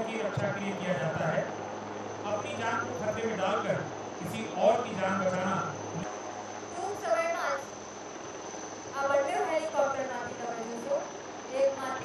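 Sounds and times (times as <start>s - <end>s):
commentator speaking: 0.0s - 1.5s, 2.2s - 6.0s
high-pitched whine: 0.0s - 12.0s.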